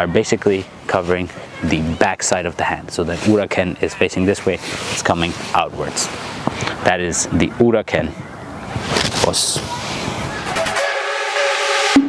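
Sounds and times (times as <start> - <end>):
whistle-like held chord: 10.6 - 12.0.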